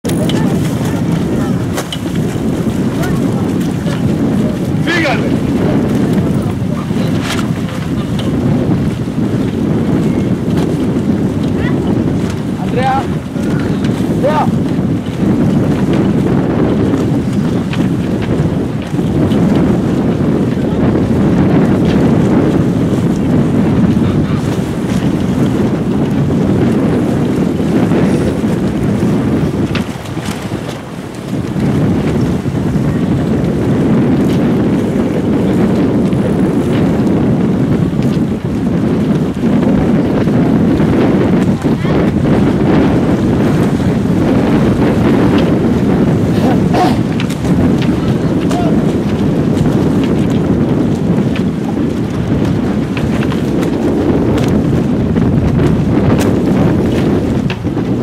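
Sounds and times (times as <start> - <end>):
wind on microphone: 0.0 - 58.0.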